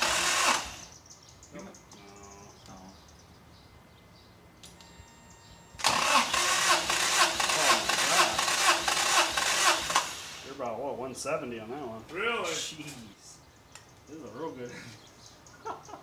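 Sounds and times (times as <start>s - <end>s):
engine cranking without firing: 0.0s - 0.9s, 5.8s - 10.5s.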